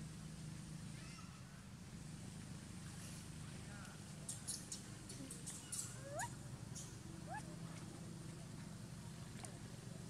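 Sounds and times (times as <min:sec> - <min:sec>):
low background hum: 0:00.0 - 0:10.0
baby macaque rising calls: 0:05.6 - 0:06.4.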